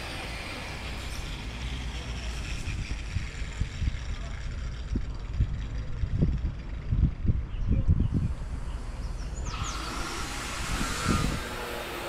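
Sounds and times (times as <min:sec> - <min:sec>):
wind buffeting microphone: 0:02.3 - 0:12.0.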